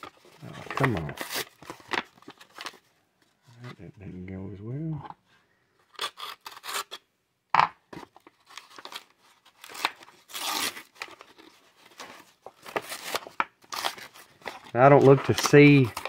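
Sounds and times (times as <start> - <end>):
paper tearing and crinkling: 0.0 - 2.8, 5.9 - 7.0, 8.2 - 16.0.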